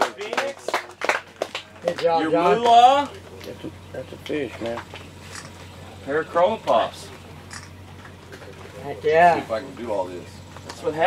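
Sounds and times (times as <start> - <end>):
people clapping: 0.0 - 5.1.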